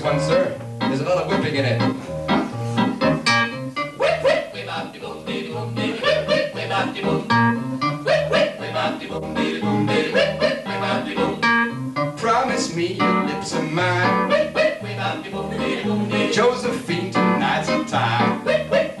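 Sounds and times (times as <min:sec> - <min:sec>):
upbeat electronic keyboard melody: 0:00.0 - 0:19.0.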